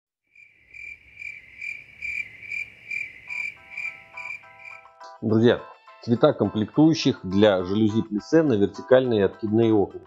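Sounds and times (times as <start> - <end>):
insect chirping: 0.3 - 4.8.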